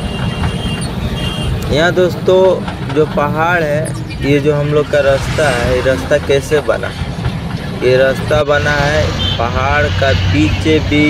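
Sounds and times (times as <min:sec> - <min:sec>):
truck engine rumble: 0:00.0 - 0:11.0
tyres on the road: 0:00.0 - 0:11.0.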